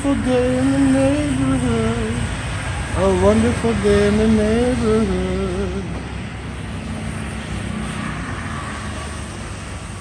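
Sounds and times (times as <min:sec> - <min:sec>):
motor scooter passing: 0:00.0 - 0:10.0
traffic rumble: 0:00.0 - 0:10.0.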